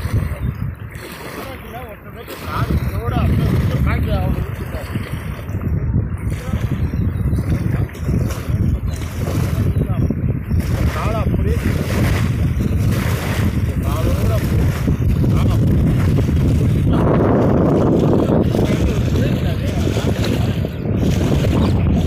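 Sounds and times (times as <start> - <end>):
waves washing against shore: 0.0 - 22.0
wind buffeting microphone: 0.0 - 22.0.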